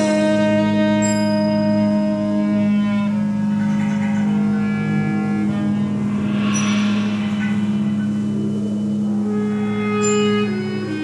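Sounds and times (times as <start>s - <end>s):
saxophone and clarinet held notes: 0.0s - 6.3s, 9.2s - 11.0s
low bass drone: 0.0s - 10.9s
hissing noise: 5.6s - 9.6s.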